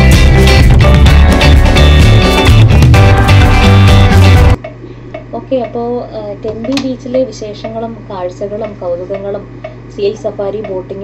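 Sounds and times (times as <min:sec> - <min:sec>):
steady low hum: 0:00.0 - 0:11.0
woman talking: 0:05.3 - 0:11.0.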